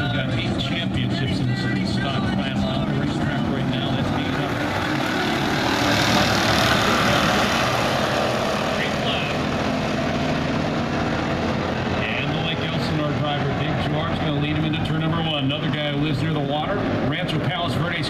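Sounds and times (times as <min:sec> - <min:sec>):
race car engines running hard: 0:00.0 - 0:18.0.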